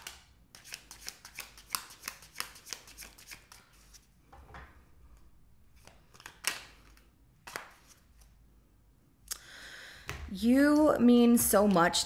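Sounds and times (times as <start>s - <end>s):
deck of cards shuffling: 0.0s - 4.1s, 5.8s - 8.4s.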